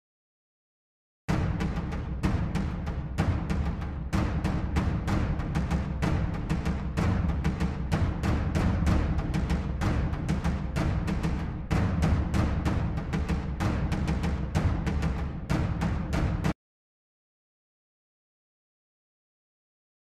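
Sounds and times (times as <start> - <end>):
cinematic drums pounding: 1.3 - 16.5.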